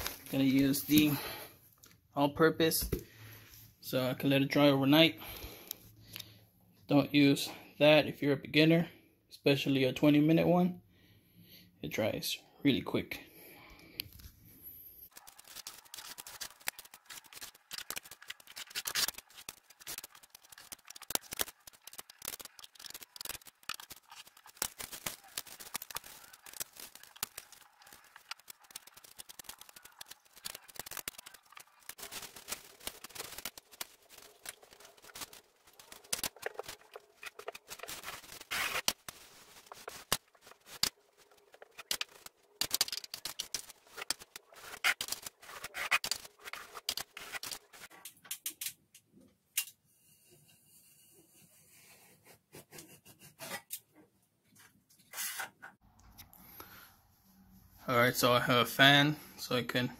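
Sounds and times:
drywall knife scraping: 0:50.1 - 0:53.8, 0:55.1 - 0:55.6.

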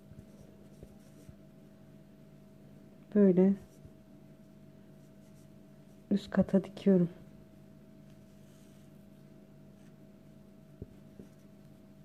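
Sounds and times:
steady low hum: 0:00.0 - 0:12.0
needle and yarn rubbing: 0:00.2 - 0:01.4, 0:04.9 - 0:06.1.

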